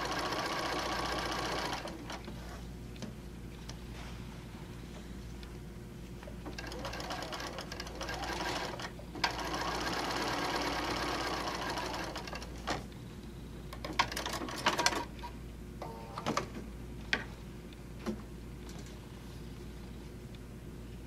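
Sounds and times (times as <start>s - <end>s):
sewing machine stitching: 0.0s - 2.1s, 6.6s - 12.5s.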